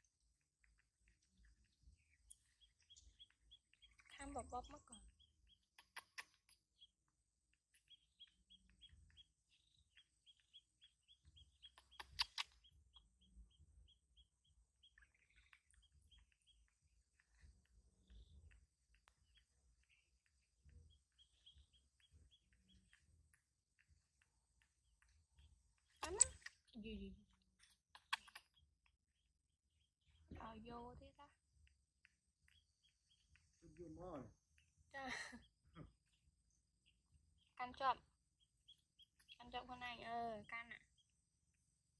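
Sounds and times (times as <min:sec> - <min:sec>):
high bird chirps: 0:00.7 - 0:07.0, 0:07.7 - 0:41.2.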